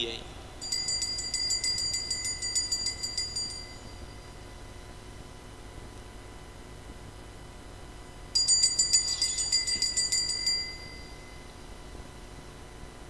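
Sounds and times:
altar bell ringing: 0:00.6 - 0:04.6, 0:08.4 - 0:11.6.

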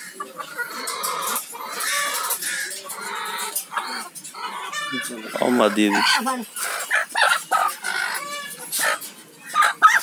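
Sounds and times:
chickens clucking and squawking: 0:00.0 - 0:10.0.

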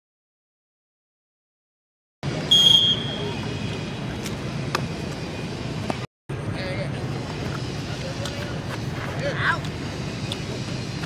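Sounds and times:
distant players' voices and shouts: 0:02.2 - 0:10.7
referee's whistle: 0:02.5 - 0:03.4.

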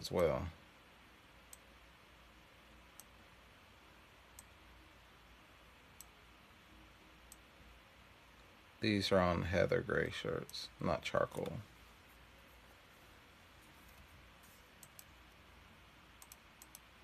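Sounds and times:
low steady hiss: 0:00.0 - 0:17.0
computer mouse clicks: 0:02.9 - 0:03.2, 0:04.3 - 0:04.6, 0:14.7 - 0:15.4, 0:16.2 - 0:16.9.

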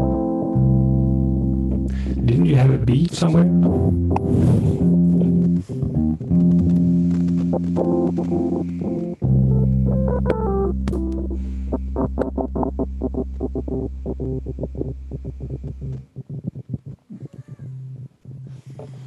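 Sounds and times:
short repeated chord stabs: 0:00.0 - 0:17.1
bass line: 0:00.0 - 0:19.0
sustained keyboard chords: 0:00.0 - 0:19.0.

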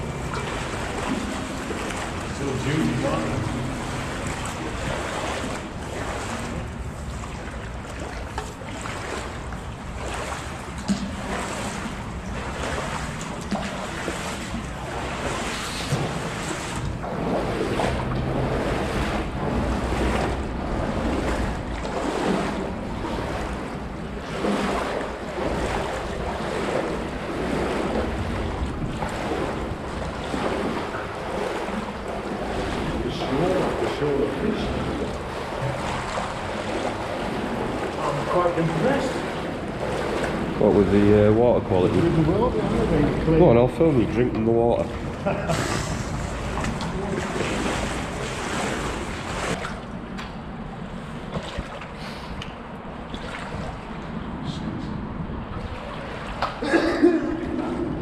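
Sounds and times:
footsteps splashing through water: 0:00.0 - 0:50.5, 0:51.1 - 0:54.2, 0:55.5 - 0:58.0.

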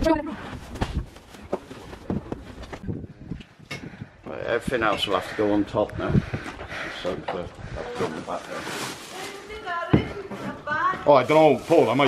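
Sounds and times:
knocks from carried items: 0:09.9 - 0:11.0.

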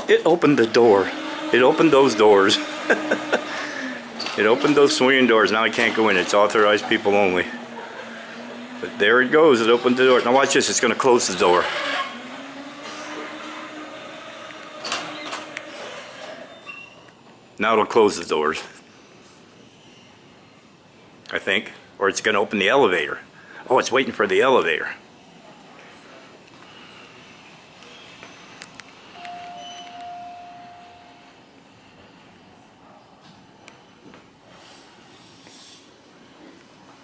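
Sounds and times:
electric motor hum: 0:00.3 - 0:16.5
short high beep: 0:29.2 - 0:31.3.

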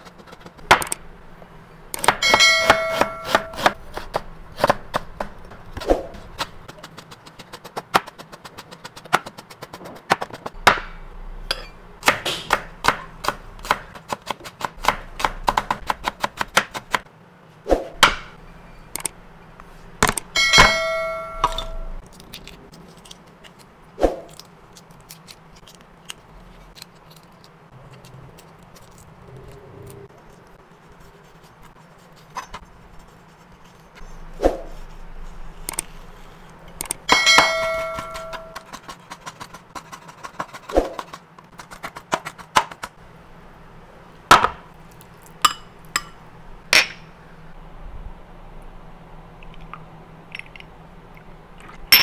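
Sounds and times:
knife chopping on cutting board: 0:02.0 - 0:11.0, 0:12.0 - 0:17.0
metallic bell ding: 0:02.2 - 0:03.7, 0:20.4 - 0:22.0, 0:37.1 - 0:38.6.

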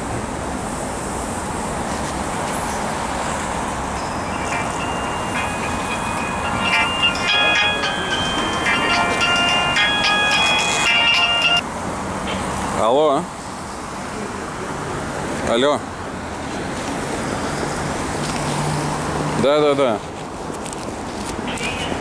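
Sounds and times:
city traffic noise: 0:00.0 - 0:22.0
mobile phone ringtone melody: 0:04.0 - 0:11.6.

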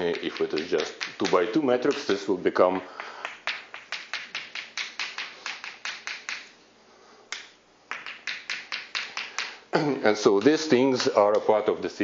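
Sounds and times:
chalk tapping on blackboard: 0:00.0 - 0:02.2, 0:02.8 - 0:06.5, 0:07.3 - 0:09.6.

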